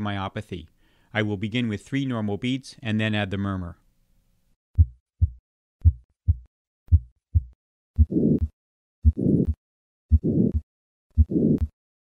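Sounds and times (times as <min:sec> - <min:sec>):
heartbeats through stethoscope: 0:04.8 - 0:11.8.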